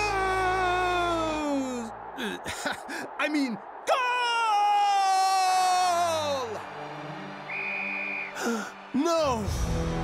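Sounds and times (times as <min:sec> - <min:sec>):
background music: 0:00.0 - 0:02.9, 0:04.9 - 0:10.0.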